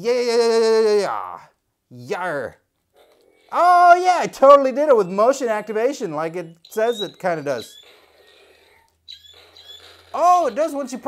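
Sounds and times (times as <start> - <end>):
electronic toy sound effect: 2.9 - 11.0.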